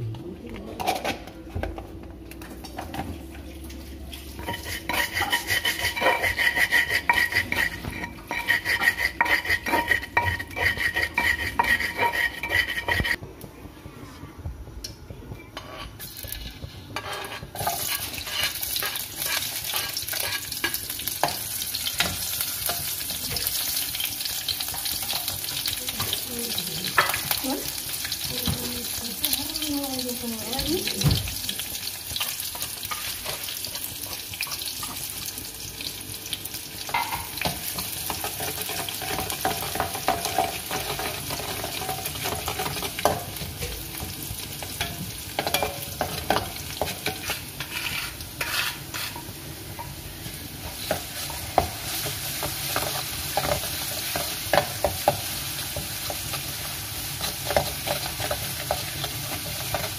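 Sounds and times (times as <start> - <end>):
kitchen utensils scraping and clacking: 0.6 - 1.4, 4.1 - 13.2, 15.4 - 35.2, 36.8 - 50.0, 50.6 - 59.9
shallots sizzling in oil: 3.9 - 13.2, 15.6 - 59.9.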